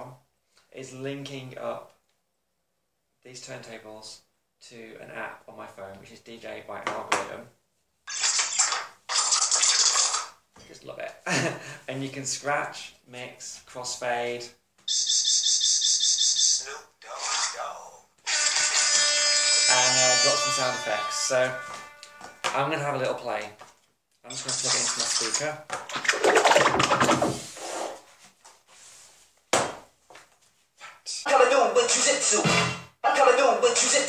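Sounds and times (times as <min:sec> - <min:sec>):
high-pitched electronic trill: 0:14.9 - 0:16.6.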